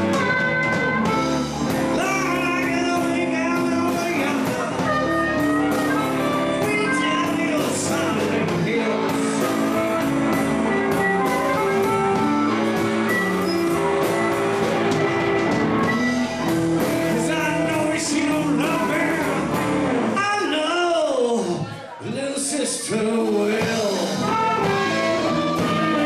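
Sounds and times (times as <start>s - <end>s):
harmonica through a microphone: 0.0s - 20.1s, 22.8s - 26.0s
bass guitar: 0.0s - 26.0s
drums: 0.0s - 26.0s
electric guitar: 0.0s - 26.0s.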